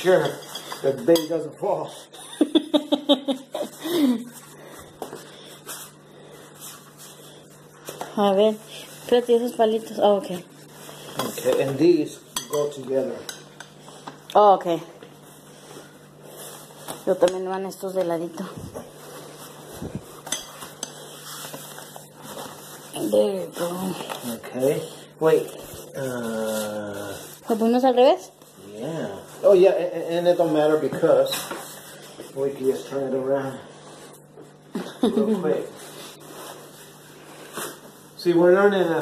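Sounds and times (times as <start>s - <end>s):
person laughing: 2.1s - 4.4s, 34.7s - 35.6s.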